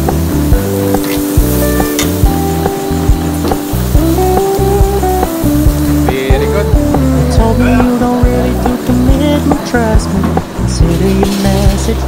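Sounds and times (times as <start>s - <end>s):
meat sizzling on a grill: 0.0s - 12.0s
pop music with a beat: 3.5s - 12.0s.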